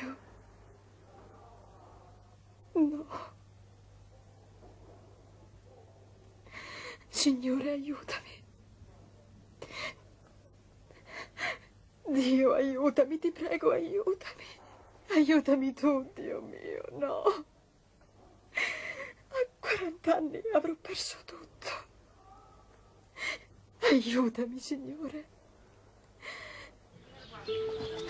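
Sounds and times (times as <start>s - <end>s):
woman's voice: 0.0s - 0.2s, 7.1s - 8.5s, 12.1s - 17.5s, 19.3s - 21.9s, 23.8s - 25.3s.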